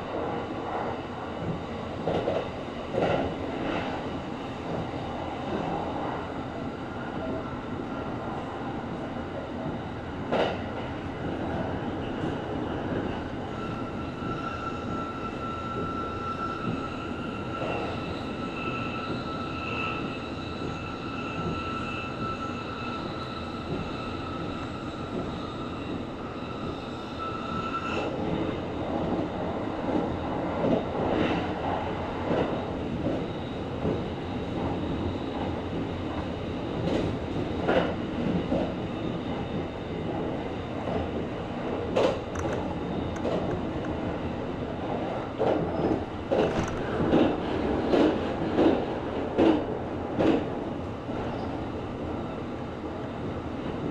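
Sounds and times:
wheels rumbling on rail: 0:00.0 - 0:53.9.

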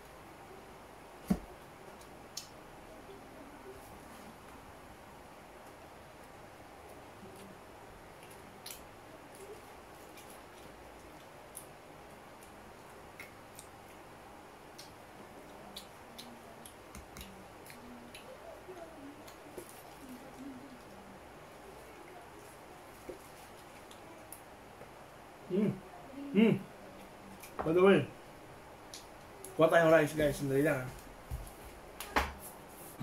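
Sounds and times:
faint chewing: 0:06.8 - 0:14.0, 0:14.7 - 0:25.0.

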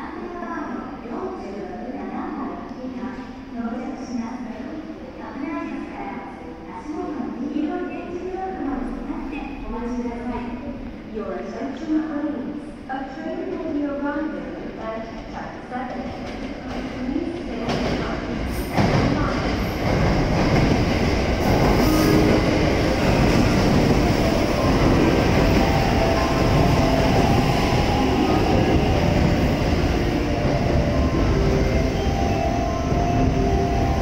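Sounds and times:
train rumble and wheel noise: 0:00.0 - 0:34.0.

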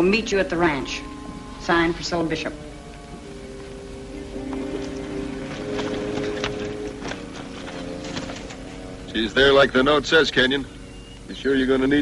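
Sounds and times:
music holding steady notes: 0:00.0 - 0:12.0
horse hooves clopping on dirt: 0:02.8 - 0:11.4.

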